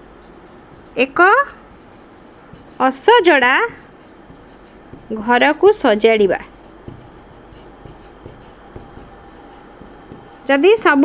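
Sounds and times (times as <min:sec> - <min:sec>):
marker scratching on whiteboard: 0:00.2 - 0:10.9
soft marker taps: 0:01.8 - 0:03.1, 0:03.7 - 0:10.5.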